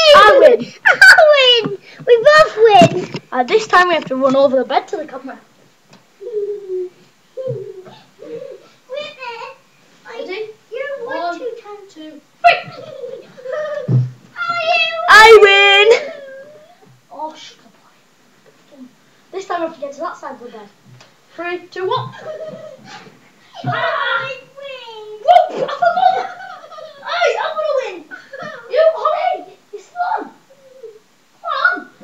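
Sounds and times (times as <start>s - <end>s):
child laughing: 12.4s - 14.0s, 22.0s - 22.9s, 25.2s - 31.9s
child calling: 30.0s - 32.0s.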